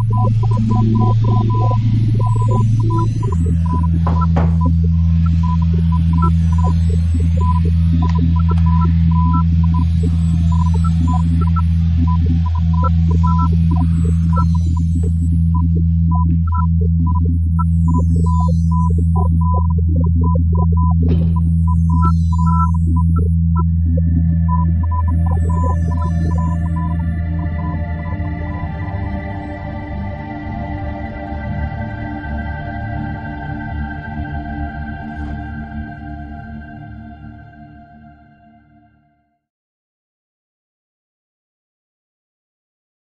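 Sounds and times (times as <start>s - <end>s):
loud steady low hum: 0.0s - 37.6s
low synthesizer drone: 0.0s - 39.0s.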